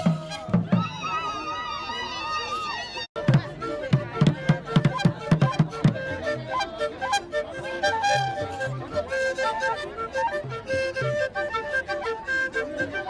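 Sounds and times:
drums beating quickly: 0.0 - 1.3, 3.2 - 6.6
melody instrument held notes: 3.2 - 13.0.

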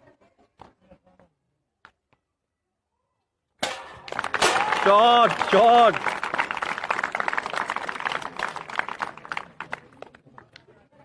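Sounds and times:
crowd clapping: 4.0 - 10.7.

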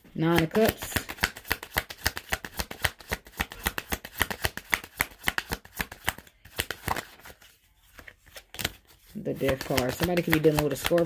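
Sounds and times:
cards being shuffled: 0.2 - 11.0.

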